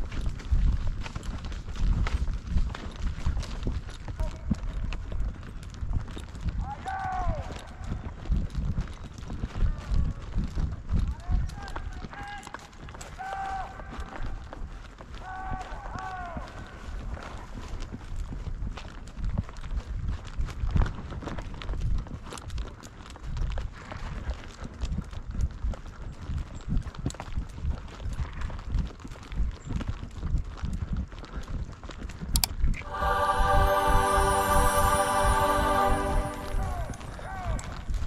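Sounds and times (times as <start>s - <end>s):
horse hoofbeats in dry grass: 0.0s - 32.4s.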